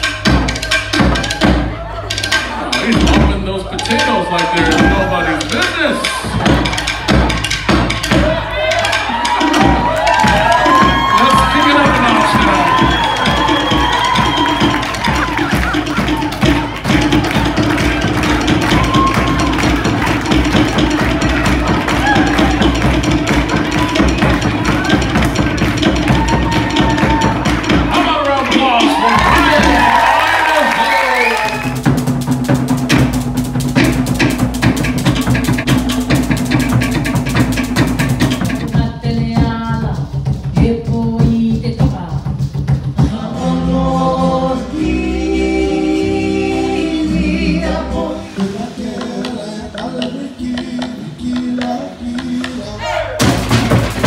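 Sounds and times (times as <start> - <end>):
steady music: 0.0 - 40.8, 42.8 - 54.0
fast drumming: 0.0 - 44.0, 48.0 - 54.0
slit-drum beat: 0.0 - 54.0
voices whooping and shouting: 8.2 - 20.0, 21.4 - 22.8, 26.0 - 31.8.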